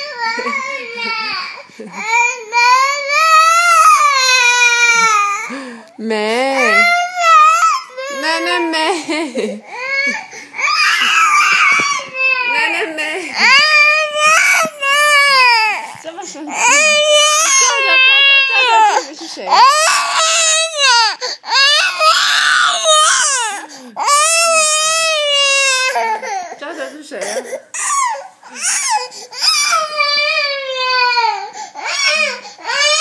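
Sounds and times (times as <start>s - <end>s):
baby crying: 0.0s - 5.7s, 6.5s - 9.0s, 9.6s - 33.0s.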